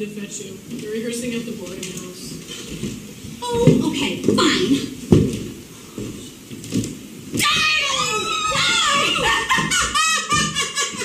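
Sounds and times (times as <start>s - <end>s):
person screaming high-pitched: 7.4s - 9.4s.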